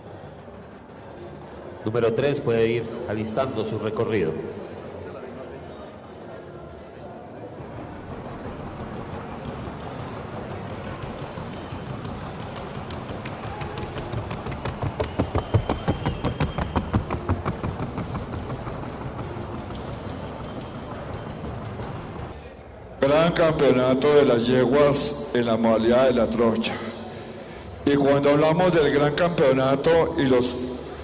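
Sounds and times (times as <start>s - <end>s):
arena background noise: 0.0s - 31.0s
hoofbeats on wooden boards: 8.1s - 22.4s.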